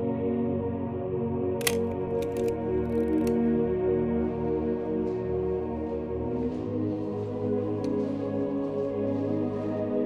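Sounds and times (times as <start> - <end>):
slow ambient music: 0.0 - 10.0
camera shutter clicks: 1.6 - 3.4.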